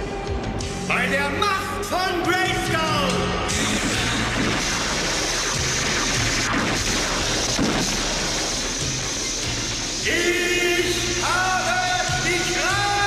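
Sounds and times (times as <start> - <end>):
dramatic music: 0.0 - 13.0
rushing crackling surge effect: 3.5 - 12.7.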